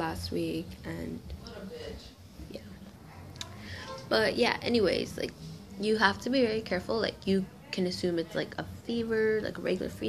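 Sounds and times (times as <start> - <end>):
low steady hum: 0.0 - 10.0
woman speaking softly: 0.0 - 10.0.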